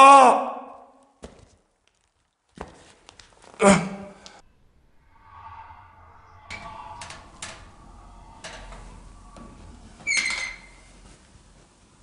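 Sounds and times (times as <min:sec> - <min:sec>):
high-pitched door squeak: 0:05.0 - 0:11.0.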